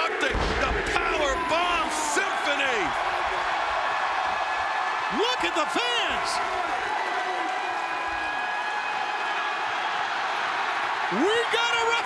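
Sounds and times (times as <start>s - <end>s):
arena crowd cheering and applauding: 0.0s - 12.0s.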